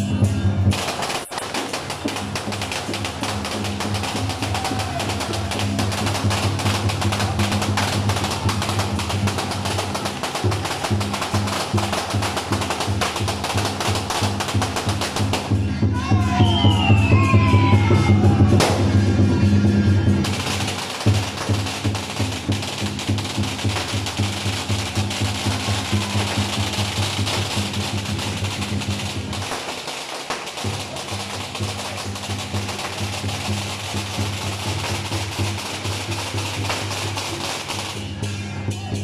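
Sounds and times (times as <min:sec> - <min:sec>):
amplified procession music: 0:00.0 - 0:39.0
rapid percussive clatter: 0:00.7 - 0:15.7, 0:20.0 - 0:38.4.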